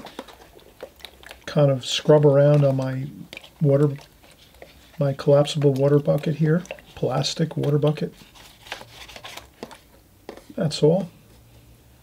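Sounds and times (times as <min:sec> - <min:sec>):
brush swishing in water: 0:00.0 - 0:10.6.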